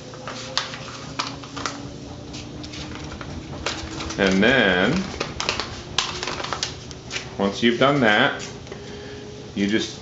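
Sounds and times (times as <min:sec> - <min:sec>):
paper being folded and creased: 0:00.0 - 0:07.9.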